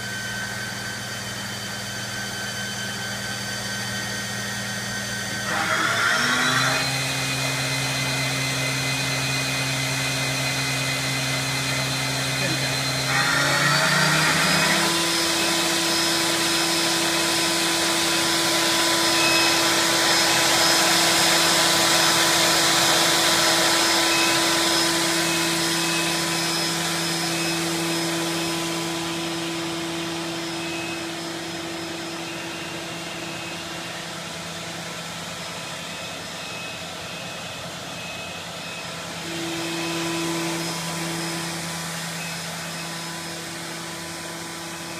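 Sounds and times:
machine spindle whining: 0.0s - 44.9s.

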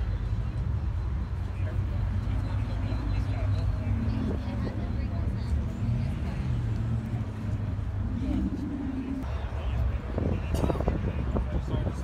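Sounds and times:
indistinct voices of people: 0.0s - 12.0s
steady low rumble: 2.0s - 11.9s.

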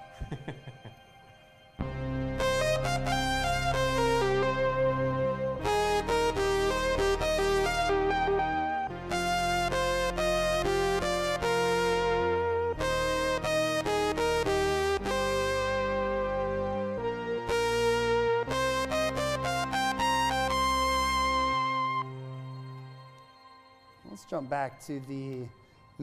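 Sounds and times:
synthesizer playing: 0.0s - 25.5s.

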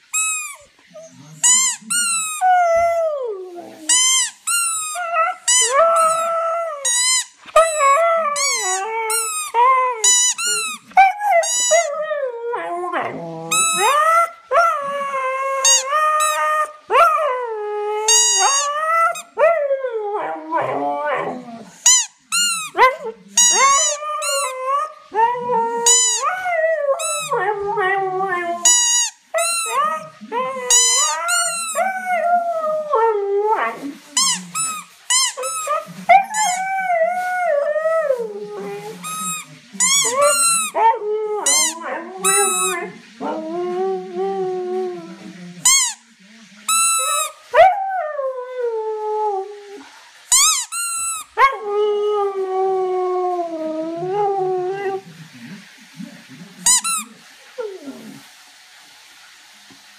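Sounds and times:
squeaky toy squeaking: 0.1s - 0.7s, 1.4s - 2.4s, 3.9s - 11.9s, 13.5s - 14.1s, 18.1s - 19.2s, 21.8s - 22.8s, 23.4s - 24.6s, 25.8s - 26.2s, 28.6s - 29.8s, 30.7s - 31.8s, 34.2s - 35.7s, 36.3s - 36.6s, 39.0s - 40.8s, 41.4s - 42.8s, 45.6s - 46.0s, 46.7s - 47.4s, 50.3s - 51.3s, 56.6s - 57.0s
dog howling: 7.5s - 21.8s, 22.7s - 34.5s, 35.4s - 45.7s.

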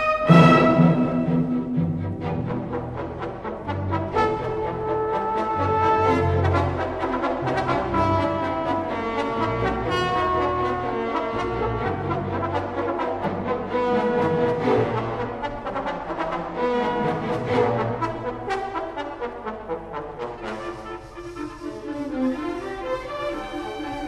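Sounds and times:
orchestra playing sustained chords: 0.0s - 18.4s.

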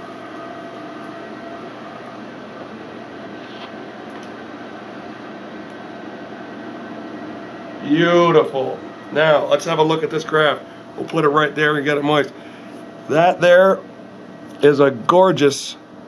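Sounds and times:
ventilation machine hum: 0.0s - 16.0s.

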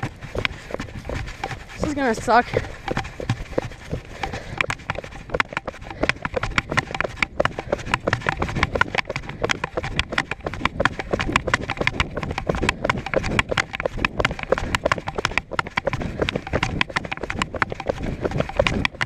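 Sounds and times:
running footsteps in rubber boots: 0.0s - 19.0s.

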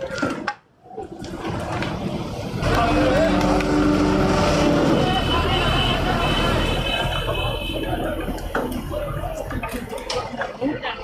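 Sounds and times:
heavy vehicle engine running: 1.2s - 10.4s.

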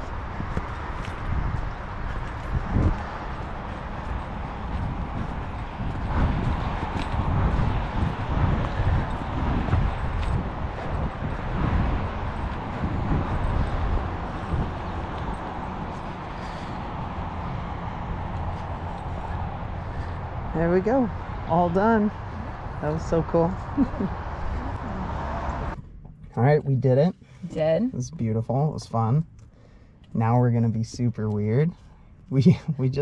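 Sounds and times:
wind rumble on microphone: 0.0s - 29.1s.

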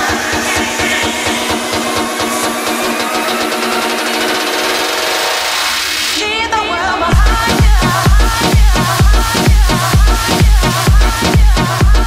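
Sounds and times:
held synth chords: 0.0s - 6.1s
electro house music: 0.0s - 12.0s
heavy kick drum: 7.1s - 12.0s.

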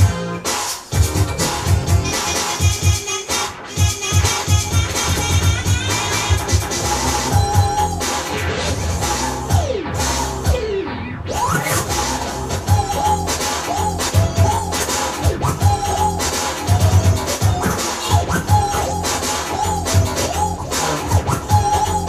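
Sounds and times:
turntable scratching over drum beat: 0.0s - 22.0s.

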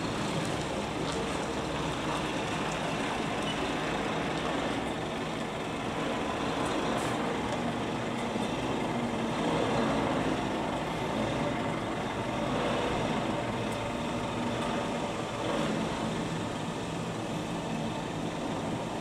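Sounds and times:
diesel lorry engine running: 0.0s - 19.0s.

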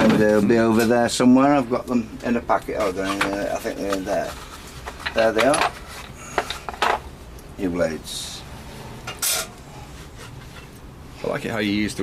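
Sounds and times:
handling of cloth and metal: 2.7s - 7.1s.

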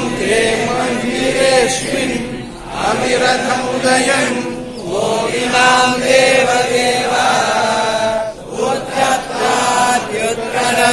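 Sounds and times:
men chanting in unison: 0.0s - 10.9s.

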